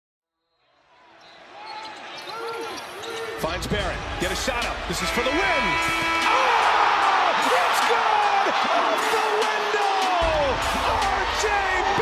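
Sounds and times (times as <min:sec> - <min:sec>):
arena crowd noise: 0:00.6 - 0:12.0
sneakers squeaking on court: 0:01.2 - 0:03.4.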